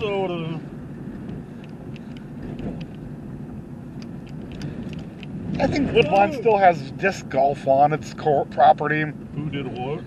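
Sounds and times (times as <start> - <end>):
car driving rumble inside cabin: 0.0 - 10.0
faint ticks: 1.2 - 3.1.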